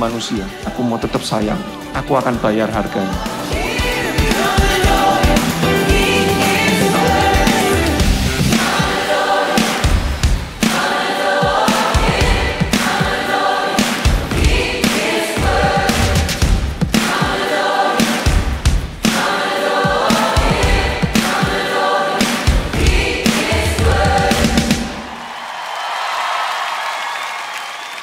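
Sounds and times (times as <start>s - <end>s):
group singing: 0.0s - 25.3s
steady drum beat: 1.4s - 25.1s
band playing: 1.6s - 9.4s.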